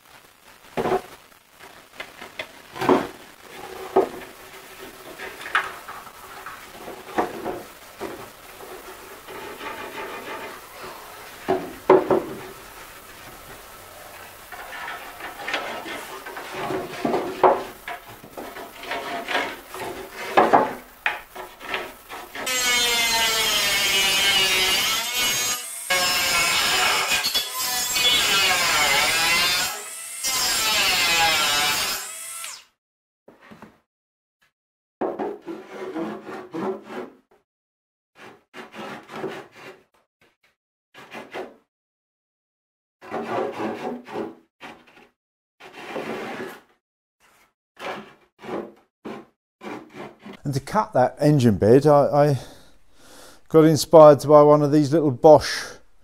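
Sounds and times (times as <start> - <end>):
wooden knocks and scrapes: 2.4 - 12.6, 14.5 - 22.5, 33.3 - 33.8, 35.0 - 37.2, 38.2 - 39.8, 43.0 - 46.7, 47.3 - 50.4
power saw cutting plywood: 14.4 - 32.7.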